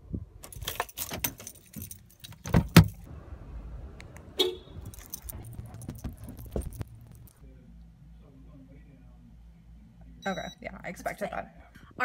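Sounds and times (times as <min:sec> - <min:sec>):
car keys jangling: 0:00.4 - 0:03.1, 0:04.8 - 0:07.4
heavy thumps: 0:04.9 - 0:07.4.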